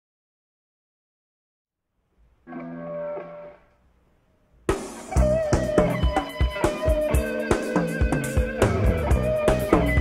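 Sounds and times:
electric guitar: 2.4 - 3.8, 4.7 - 10.0
rock band playing: 2.5 - 3.6, 4.7 - 10.0
drum kit: 4.6 - 10.0.

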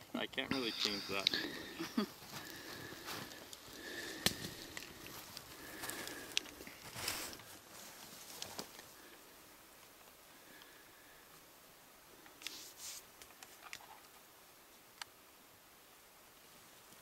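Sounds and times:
rustling through grass and shrubs: 0.1 - 11.4, 12.0 - 14.9.

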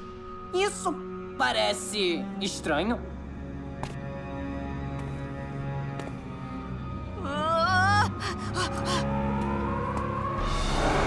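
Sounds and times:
boy whimpering: 7.2 - 9.0.

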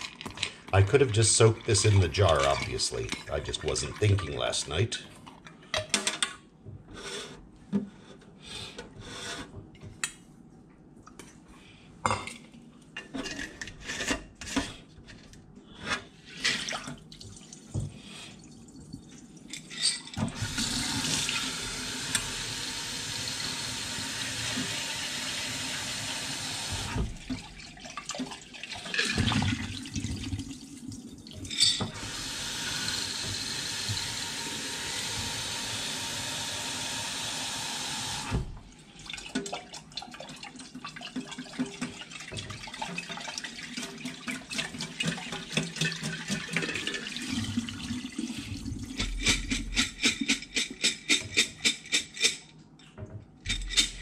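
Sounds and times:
water sloshing and draining into sink: 0.0 - 5.5, 16.0 - 35.6, 38.3 - 50.0.

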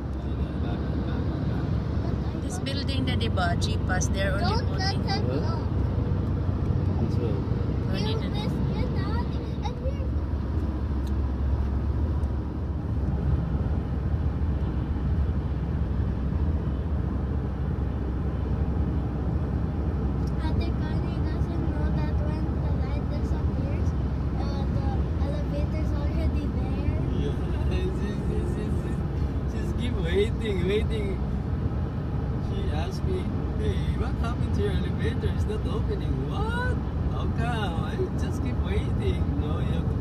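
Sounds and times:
car road and engine rumble: 0.0 - 40.0.

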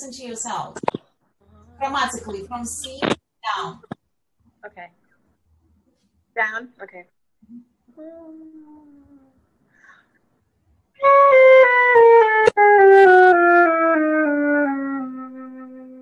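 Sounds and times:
flute playing descending scale: 11.0 - 16.0.

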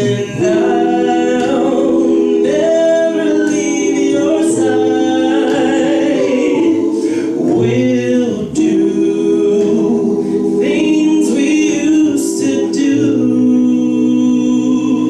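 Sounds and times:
a cappella group singing harmony: 0.0 - 15.0.

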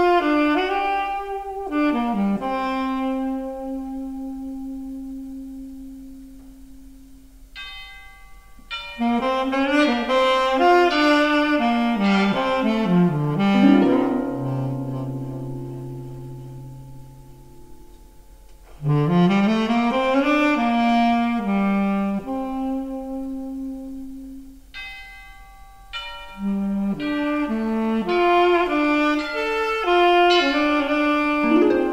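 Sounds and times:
soft higher notes: 12.0 - 19.3, 31.2 - 31.9
long held low orchestral note: 12.0 - 20.3, 31.4 - 31.9.

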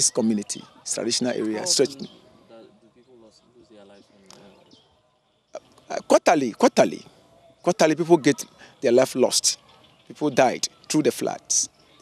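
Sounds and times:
man speaking: 0.0 - 4.6, 5.9 - 7.1, 7.7 - 11.7.

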